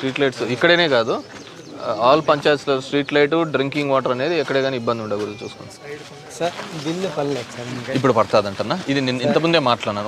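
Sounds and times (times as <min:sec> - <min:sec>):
men talking in a crowd: 0:00.0 - 0:10.0.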